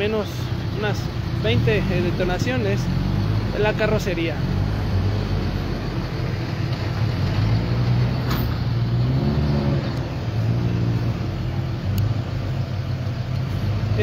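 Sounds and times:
truck engine running: 0.0 - 14.0.

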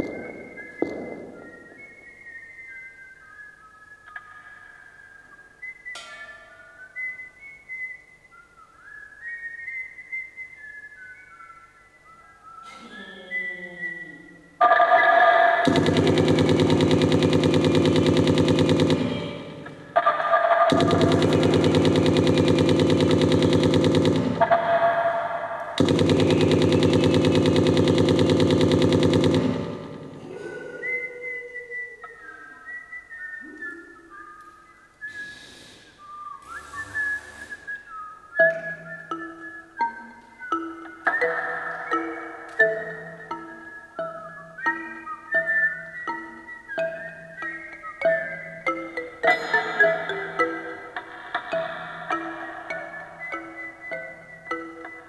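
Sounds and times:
high whistle-like melody: 0.0 - 55.0
rapidly pulsing buzzing bursts: 15.6 - 20.0, 20.7 - 24.7, 25.7 - 30.2.

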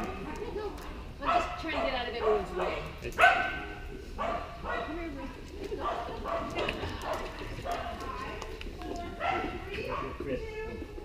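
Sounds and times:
people's voices: 0.0 - 11.0
dog barking: 1.2 - 7.9, 9.2 - 10.2.

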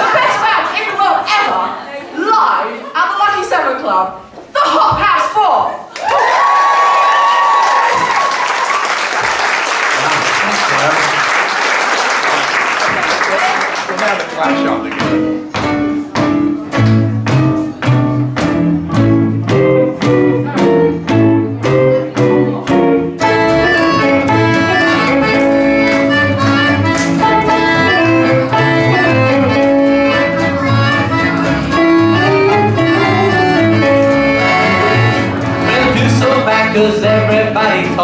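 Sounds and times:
accordion held chords: 14.4 - 38.0
upright bass and acoustic guitars: 14.4 - 38.0.

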